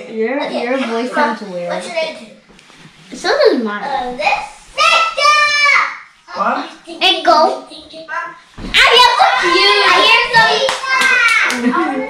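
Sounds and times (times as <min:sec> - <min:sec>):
hand claps: 0:10.4 - 0:11.9.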